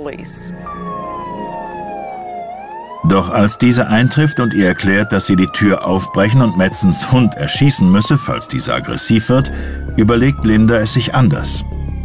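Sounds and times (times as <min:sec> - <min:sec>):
police car siren wailing: 0:00.4 - 0:12.0.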